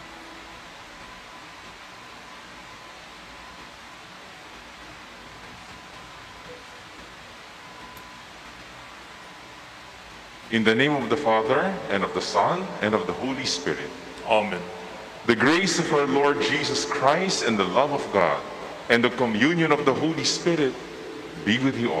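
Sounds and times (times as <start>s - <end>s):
room tone hiss: 0.0s - 22.0s.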